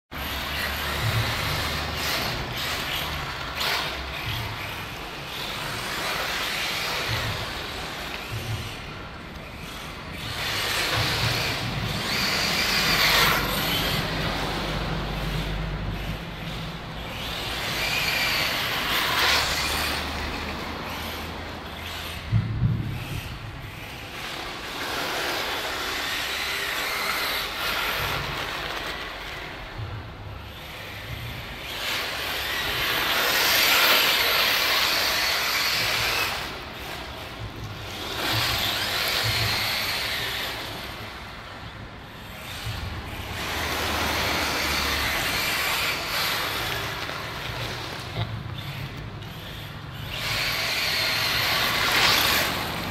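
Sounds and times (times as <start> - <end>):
rc car motor and tyres on dirt: 0.1 - 52.9.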